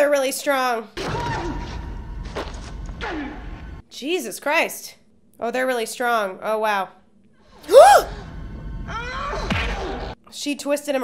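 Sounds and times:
woman shrieking: 0:07.7 - 0:08.1.

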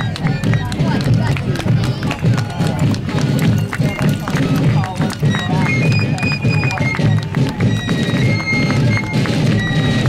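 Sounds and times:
field drums: 0:00.0 - 0:10.0
fifes playing march: 0:00.0 - 0:10.0.

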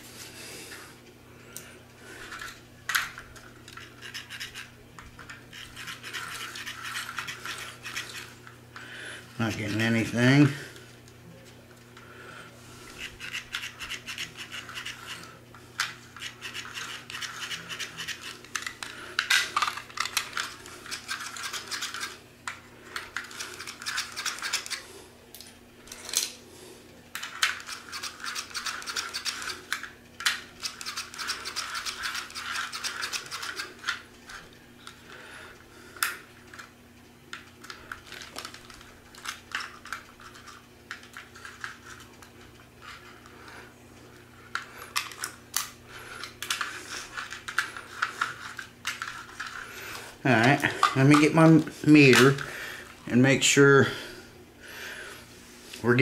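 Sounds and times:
faint steady hum: 0:00.0 - 0:56.0
toy cars rubbed on plastic track: 0:03.7 - 0:04.7, 0:05.3 - 0:08.4, 0:12.9 - 0:22.2, 0:27.2 - 0:29.8, 0:30.6 - 0:34.0.

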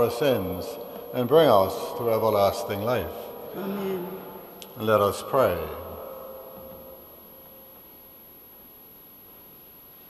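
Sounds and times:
spoken word echoing: 0:00.0 - 0:07.0
low hiss: 0:00.0 - 0:10.0.

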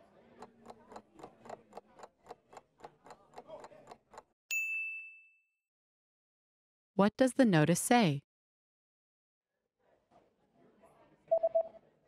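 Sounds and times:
clock ticking: 0:00.4 - 0:04.3
bell ding: 0:04.5 - 0:05.5.

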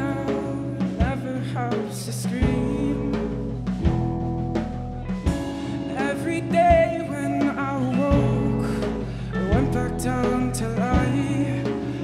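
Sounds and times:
drum hit: 0:00.0 - 0:12.0
live rock band instrumental: 0:00.0 - 0:12.0.

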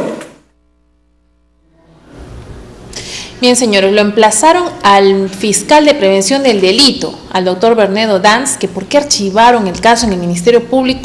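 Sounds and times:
faint electrical hum: 0:00.0 - 0:11.0
low room noise: 0:00.0 - 0:11.0.

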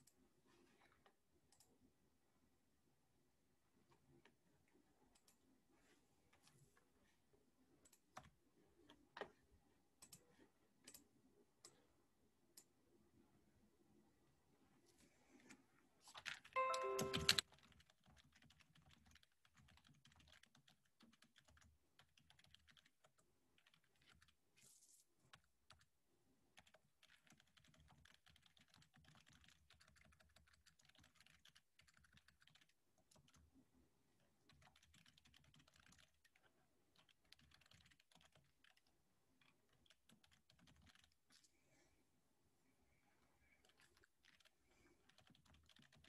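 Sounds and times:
keyboard typing: 0:16.0 - 0:24.4, 0:25.3 - 0:25.9, 0:26.5 - 0:33.6, 0:34.4 - 0:41.5, 0:43.4 - 0:46.0
electronic chime: 0:16.6 - 0:17.4.

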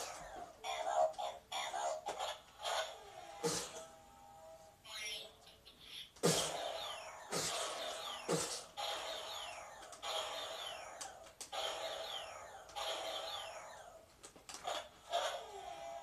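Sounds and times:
toy blaster zaps: 0:06.2 - 0:13.8.

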